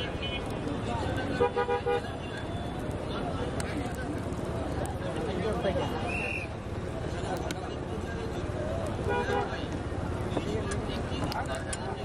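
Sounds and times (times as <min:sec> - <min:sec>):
street noise hum: 0:00.0 - 0:12.0
vehicle horn tooting: 0:01.4 - 0:02.5.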